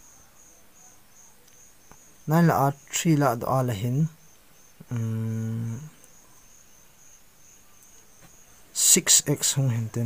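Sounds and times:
faint insect chirping: 0.0 - 10.0.

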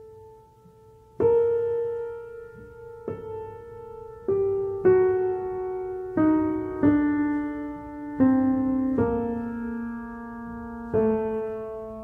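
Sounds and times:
slow piano melody: 0.0 - 12.0.

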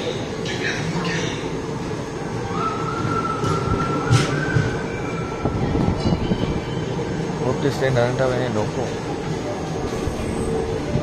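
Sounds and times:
train rumbling along rails: 0.0 - 11.0.

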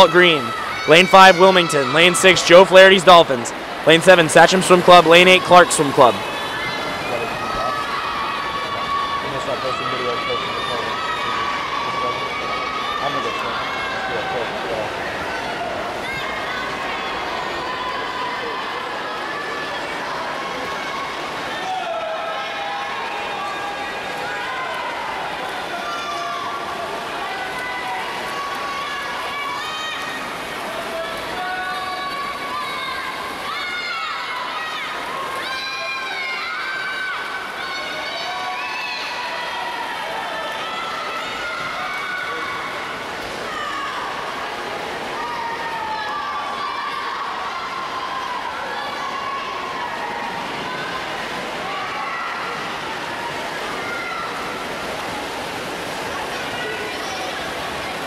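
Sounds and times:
crowd shouting and cheering: 0.0 - 58.0
water splashing: 0.0 - 58.0.

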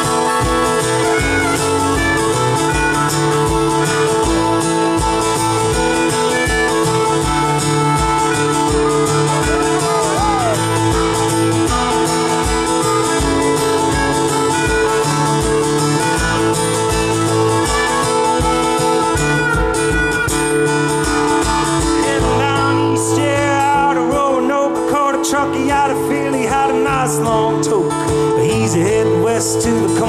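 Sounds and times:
wavering melody line with bends: 0.0 - 23.0
acoustic guitar strumming: 0.0 - 30.0.

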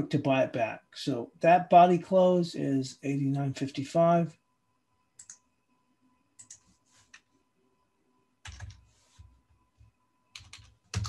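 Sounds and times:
computer keyboard keystrokes: 5.2 - 5.4, 6.4 - 7.2, 8.4 - 8.8, 10.4 - 11.0.

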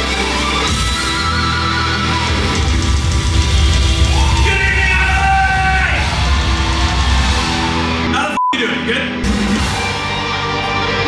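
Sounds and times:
metal band playing live: 0.0 - 8.2, 8.8 - 11.0.

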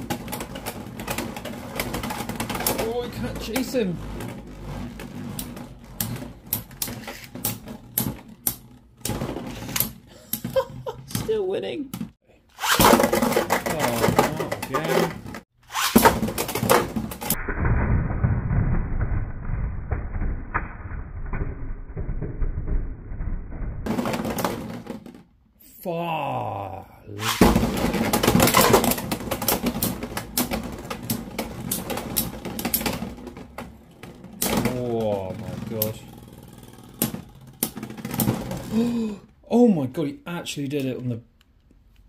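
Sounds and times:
spinning tops rumbling: 0.0 - 9.7, 27.2 - 38.9.

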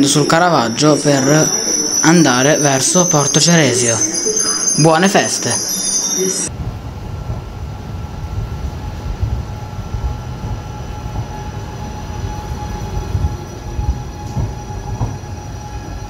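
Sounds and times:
electric train rumble and whine: 0.0 - 16.0.

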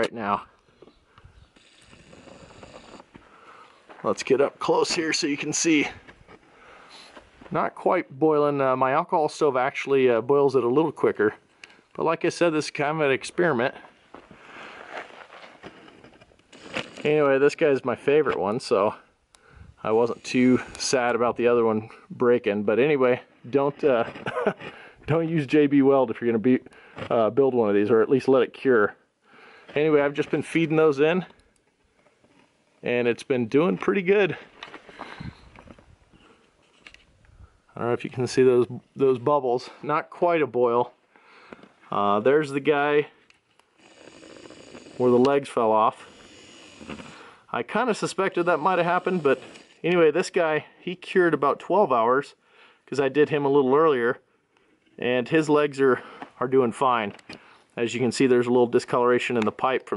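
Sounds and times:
faint steady hiss: 0.0 - 59.9.

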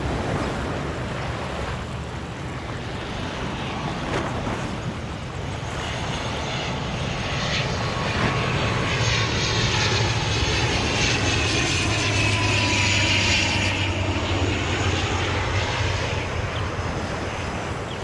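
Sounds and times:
aircraft flying low overhead: 0.0 - 18.0.

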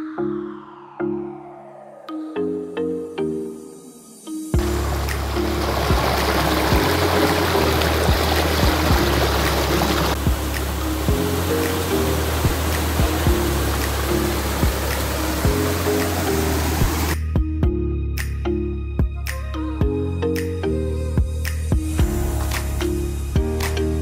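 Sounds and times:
background music with steady beat: 0.0 - 24.0
stream rushing over rocks: 4.6 - 17.2.

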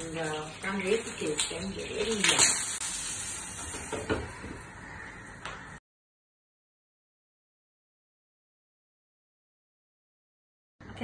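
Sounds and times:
batter sizzling in a hot pan: 0.0 - 5.0.

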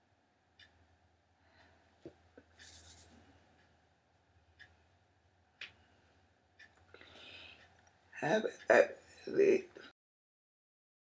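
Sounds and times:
hands rubbing together: 2.4 - 3.2.

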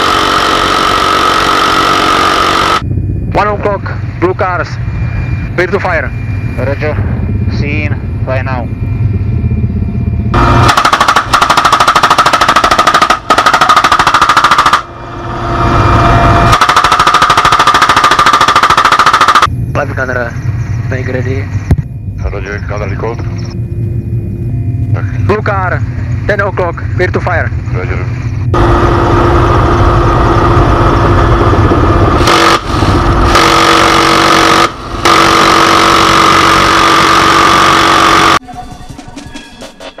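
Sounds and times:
helicopter rotor and engine drone: 0.0 - 38.4
machine gun firing bursts: 10.6 - 14.9, 16.5 - 19.5, 32.3 - 32.7, 33.3 - 38.4.

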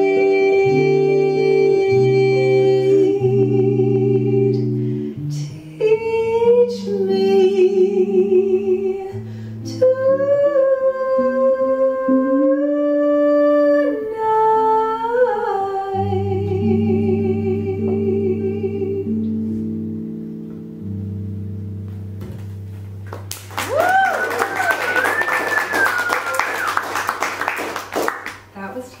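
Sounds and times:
electric guitar chords: 0.0 - 14.2, 15.7 - 25.0
woman singing jazz with vibrato: 0.0 - 19.8
audience applause: 23.1 - 28.5
whooping cheers: 23.4 - 27.2.

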